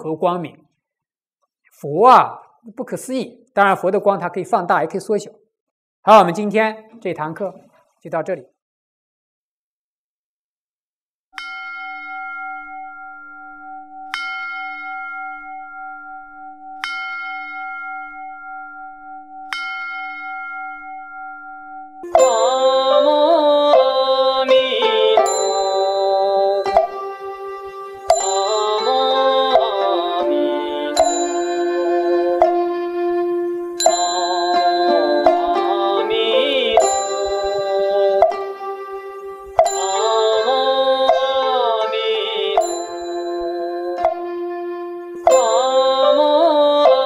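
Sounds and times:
resonant bell ringing: 11.4s - 24.0s, 24.6s - 29.8s, 30.9s - 32.7s, 33.8s - 36.0s, 36.6s - 40.8s, 42.6s - 44.2s.

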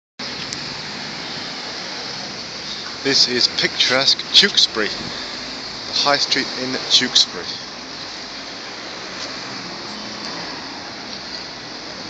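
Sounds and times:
faint low engine hum: 0.2s - 12.0s
road traffic rushing: 0.2s - 12.0s.

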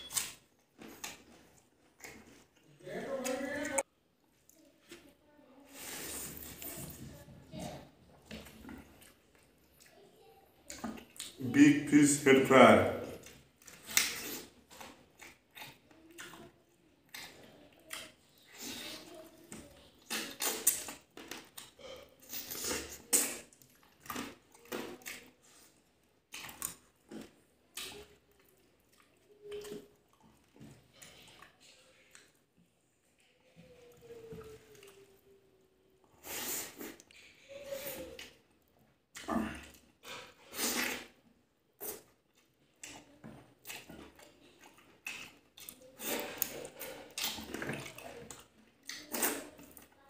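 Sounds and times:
wet chewing and smacking: 0.0s - 5.1s, 6.2s - 11.4s, 13.1s - 35.3s, 36.8s - 50.0s.

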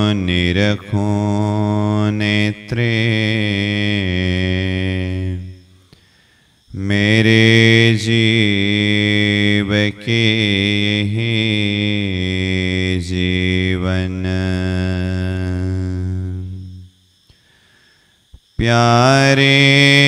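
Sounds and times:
man chanting: 0.0s - 5.7s, 6.7s - 16.9s, 18.6s - 20.0s.

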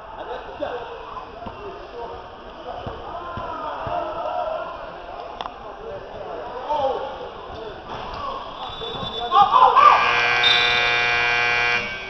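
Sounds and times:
voices shouting: 8.2s - 11.0s
scoreboard buzzer steady tone: 10.0s - 12.0s.

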